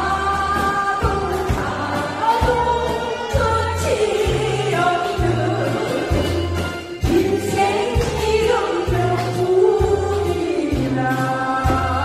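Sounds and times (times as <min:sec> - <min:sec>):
woman singing into a microphone: 0:00.0 - 0:12.0.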